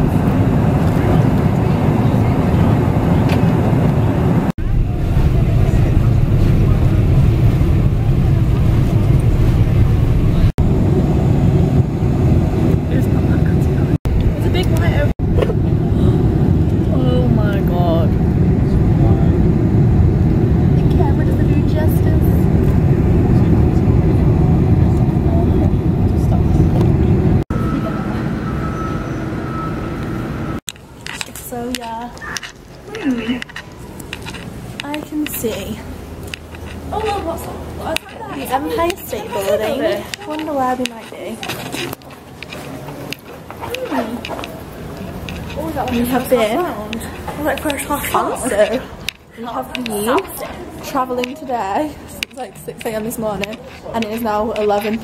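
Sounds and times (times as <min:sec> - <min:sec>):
airliner cabin rumble: 0:00.0 - 0:55.0
faint voices: 0:31.2 - 0:55.0.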